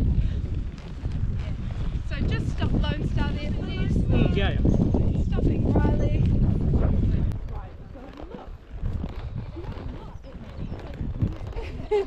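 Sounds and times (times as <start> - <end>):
horse hooves clip-clopping on gravel: 0.4 - 3.6, 6.2 - 12.0.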